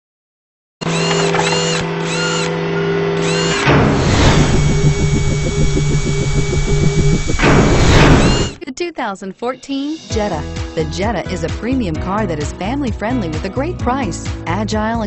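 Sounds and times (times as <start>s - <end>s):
low electronic drone: 0.9s - 8.6s
fast buzzing pulse: 3.2s - 8.6s
whoosh: 3.7s - 8.6s.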